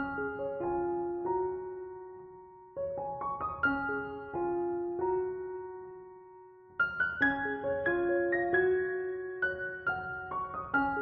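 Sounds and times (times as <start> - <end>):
soft piano music: 0.0 - 11.0.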